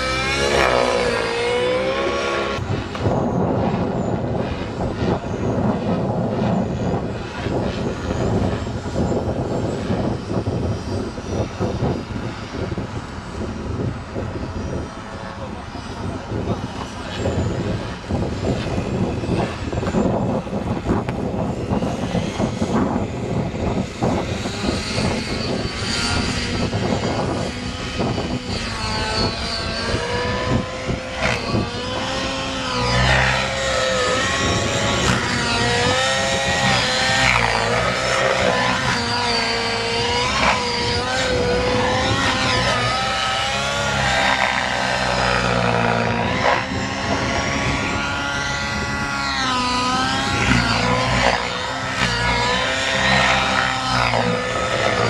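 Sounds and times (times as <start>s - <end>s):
model helicopter rotor whine: 0.0s - 55.0s.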